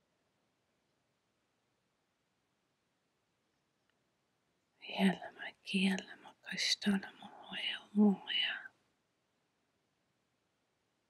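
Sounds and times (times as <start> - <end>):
woman whispering softly: 4.8 - 8.8.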